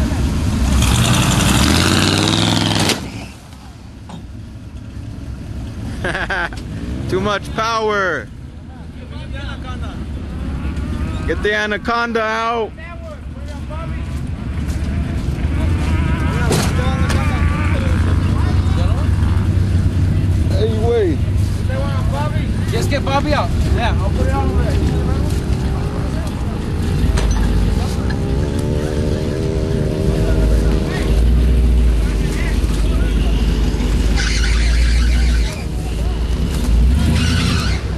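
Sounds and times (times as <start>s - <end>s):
engine rumbling at low revs: 0.0s - 37.9s.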